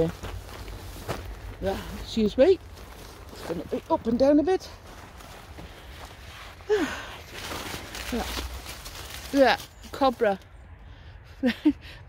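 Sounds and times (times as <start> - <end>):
rustle: 0.0 - 10.5.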